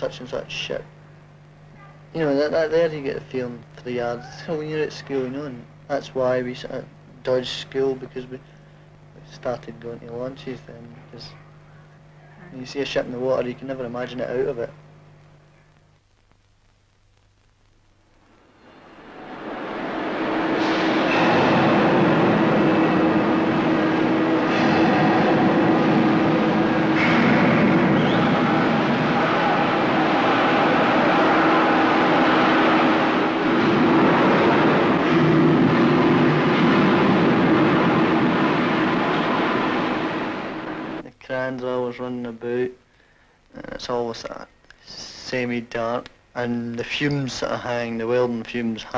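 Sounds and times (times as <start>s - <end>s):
heavy industrial machinery hum: 18.3s - 41.0s.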